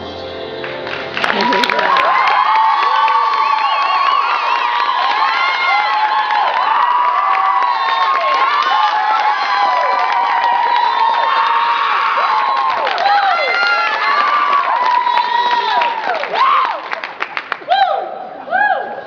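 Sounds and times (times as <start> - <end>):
audience clapping: 0.6 - 17.7
women screaming and whooping: 1.3 - 16.8.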